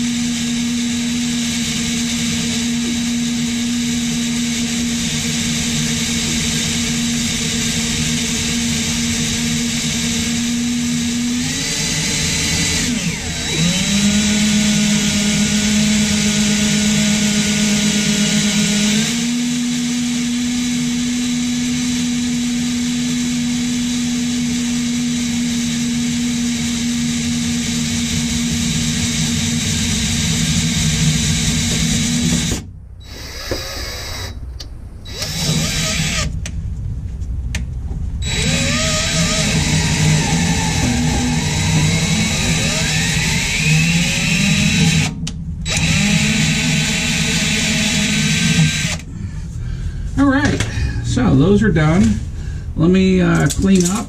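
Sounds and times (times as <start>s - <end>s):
cordless drill drilling into metal: 0.0s - 34.4s, 35.1s - 36.3s, 38.2s - 49.1s.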